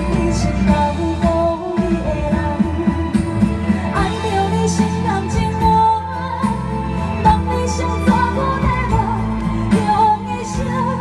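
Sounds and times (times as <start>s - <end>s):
pop backing track: 0.0s - 11.0s
woman singing into microphone: 0.0s - 11.0s.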